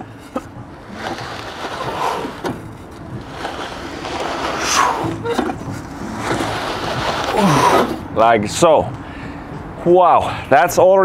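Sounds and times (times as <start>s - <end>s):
sled scraping across rubber floor: 0.0s - 8.1s.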